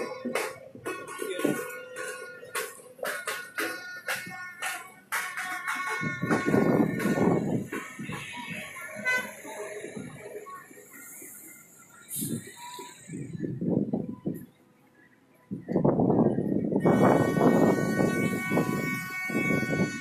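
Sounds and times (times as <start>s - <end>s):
multi-tone horn sounding: 0.0s - 9.9s, 16.8s - 20.0s
crowd voices: 0.0s - 20.0s.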